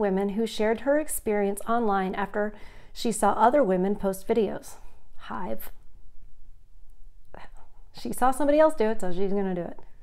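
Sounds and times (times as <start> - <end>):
woman speaking: 0.0 - 5.8, 7.4 - 9.9
low room hum: 0.0 - 10.0
breathy exhale: 2.6 - 2.9.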